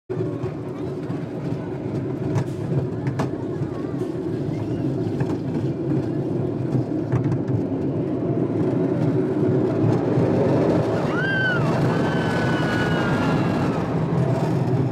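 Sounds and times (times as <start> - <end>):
roller coaster rumbling on track: 0.1 - 14.9.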